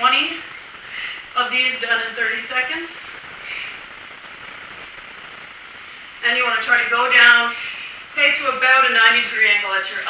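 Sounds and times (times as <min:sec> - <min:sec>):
steady recording hiss: 0:00.0 - 0:10.0.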